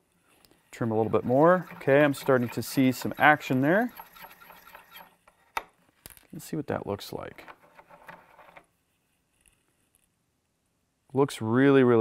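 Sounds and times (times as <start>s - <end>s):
cutter scraping metal case: 0.9s - 5.2s.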